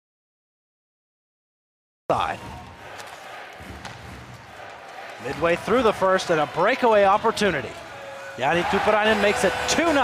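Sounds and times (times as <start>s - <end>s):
crowd hum: 2.1s - 10.0s.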